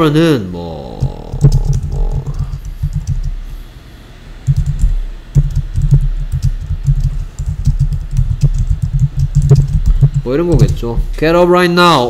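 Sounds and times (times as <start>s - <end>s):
typing on computer keyboard: 1.0s - 3.4s, 4.4s - 10.9s.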